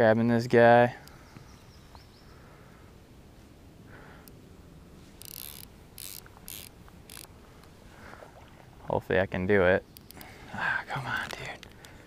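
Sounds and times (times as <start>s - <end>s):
fly reel ratcheting: 5.2s - 7.3s.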